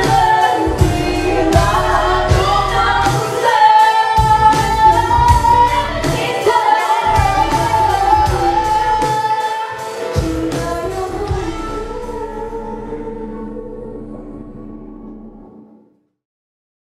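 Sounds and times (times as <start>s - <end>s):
women singing a pop duet: 0.0s - 14.0s
backing music with steady beat: 0.0s - 14.4s.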